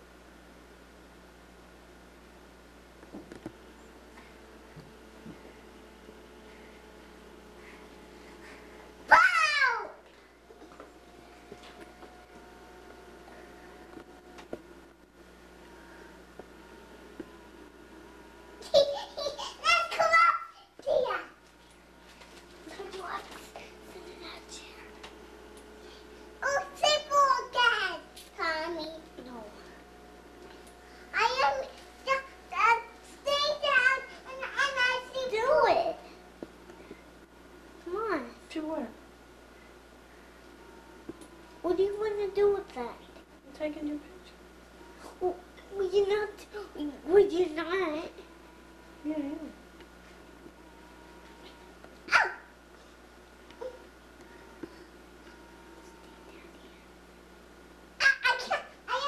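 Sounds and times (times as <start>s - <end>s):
low hum: 0.0s - 58.0s
dog barking: 52.1s - 52.5s
child whispering: 56.0s - 56.9s.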